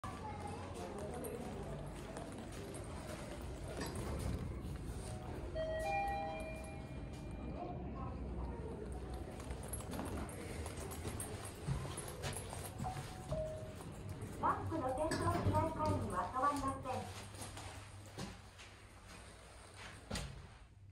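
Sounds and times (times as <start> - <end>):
footsteps on tiled floor: 0.0 - 5.6, 8.8 - 20.5
steady background noise: 0.0 - 20.9
elevator arrival chime: 5.4 - 7.8.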